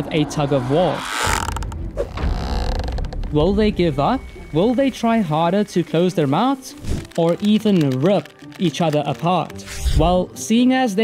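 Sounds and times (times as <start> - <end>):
low rumble: 0.0 - 5.6
rope creaking: 0.8 - 3.3, 6.8 - 10.0.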